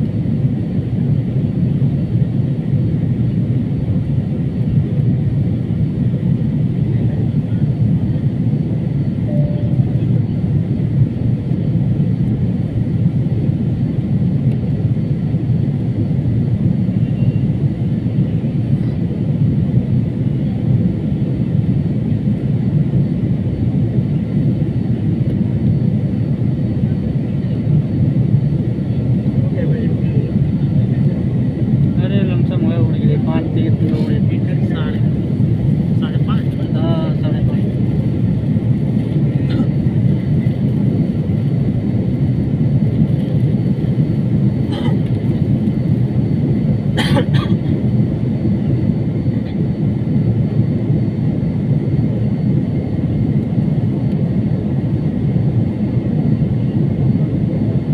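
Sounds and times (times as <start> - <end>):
airliner cabin drone: 0.0 - 57.9.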